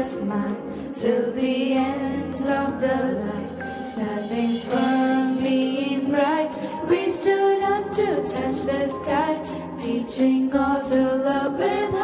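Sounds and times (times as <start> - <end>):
girl singing long held notes: 0.0 - 12.0.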